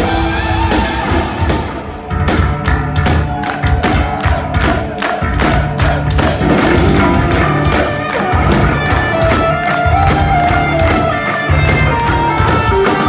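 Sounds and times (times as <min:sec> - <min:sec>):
heavy metal band playing live: 0:00.0 - 0:13.0.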